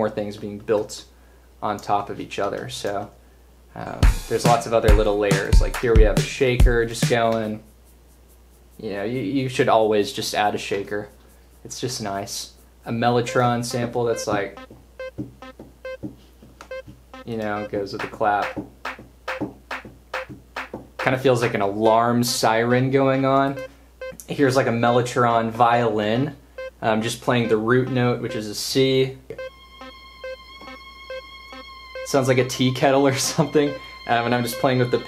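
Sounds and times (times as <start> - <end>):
faint percussion ticks: 12.5 - 21.6, 23.2 - 24.3, 29.3 - 32.3
thin steady violin tone: 27.4 - 35.0
short pitched mellotron notes: 29.4 - 35.0.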